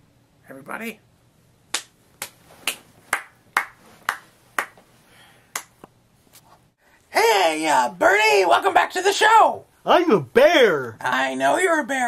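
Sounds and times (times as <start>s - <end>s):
person clapping slowly: 1.7s - 4.8s, 5.5s - 5.8s.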